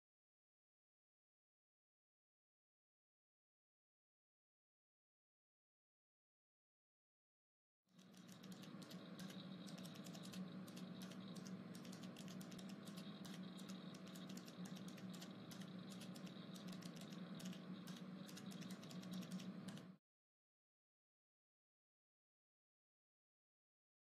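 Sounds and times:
rapid light clicks: 0:07.9 - 0:20.0
low steady hum: 0:08.0 - 0:20.0.

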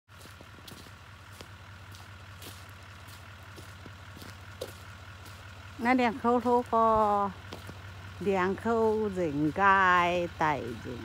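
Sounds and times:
vehicle engine running: 0:00.1 - 0:11.0
person speaking: 0:05.8 - 0:07.4, 0:08.2 - 0:11.0.

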